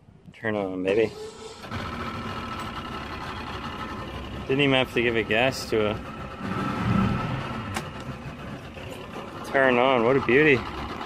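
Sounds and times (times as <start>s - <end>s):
outboard motor starting and idling: 1.0s - 11.0s.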